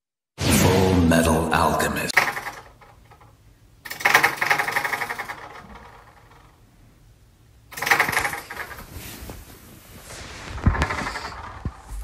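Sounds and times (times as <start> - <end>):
door rattling in its frame: 2.2 - 3.3, 3.9 - 6.6, 7.7 - 8.9, 10.7 - 12.0.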